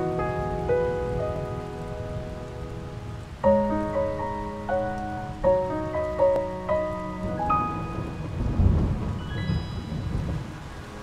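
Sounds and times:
heavy rain falling: 0:00.0 - 0:11.0
low rumble of thunder: 0:00.0 - 0:11.0
slow melody of held notes: 0:00.0 - 0:11.0.

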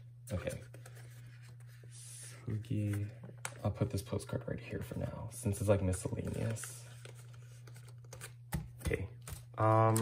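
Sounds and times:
plastic sleeves handled: 0:05.9 - 0:08.4.

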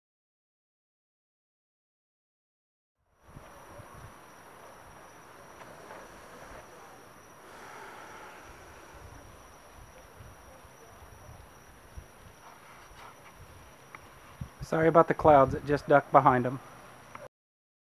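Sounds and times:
high-pitched insect drone: 0:03.2 - 0:14.9
low rumbles of wind: 0:03.2 - 0:17.1.

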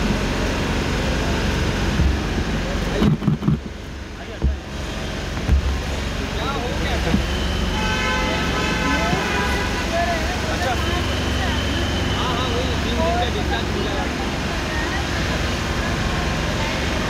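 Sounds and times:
traffic rumble: 0:00.0 - 0:17.0
vehicle horn: 0:07.3 - 0:10.9.

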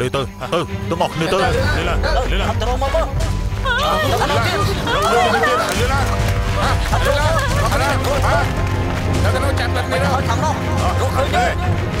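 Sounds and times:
background music: 0:00.0 - 0:12.0
babble of voices: 0:03.6 - 0:08.6.

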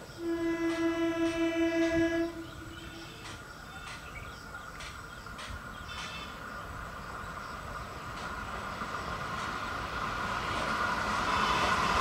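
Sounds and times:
train running on track: 0:00.0 - 0:12.0
train horn blast: 0:00.2 - 0:03.2, 0:11.2 - 0:12.0.

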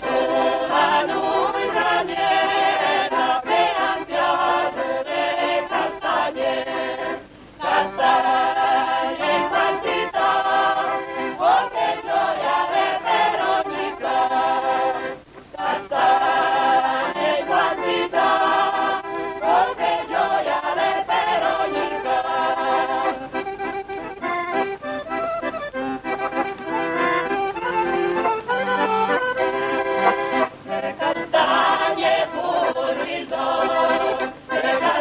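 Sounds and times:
mixed choir singing: 0:00.0 - 0:23.4, 0:30.3 - 0:35.0
accordions playing: 0:00.0 - 0:35.0.

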